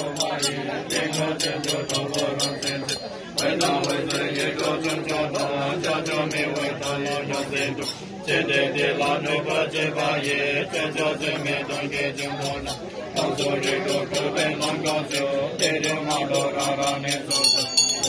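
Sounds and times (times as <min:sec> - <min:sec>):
fast percussion strikes: 0:00.0 - 0:18.0
low chanting in unison: 0:00.0 - 0:18.0.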